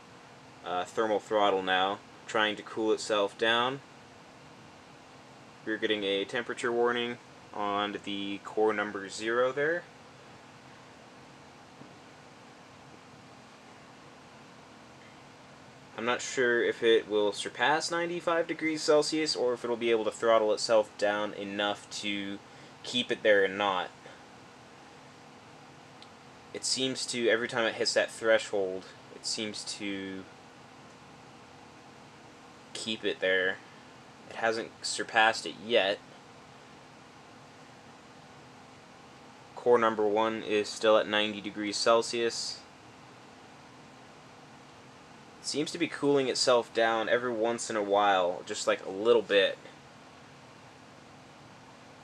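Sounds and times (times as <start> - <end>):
computer fan whirring: 0.0 - 52.0
faint steady hiss: 0.0 - 52.0.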